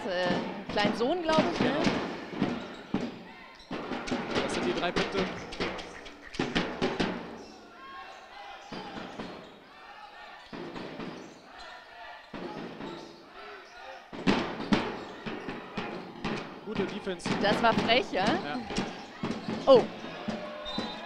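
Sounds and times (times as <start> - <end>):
basketball bouncing in a hall: 0.0 - 21.0
crowd voices: 0.0 - 21.0.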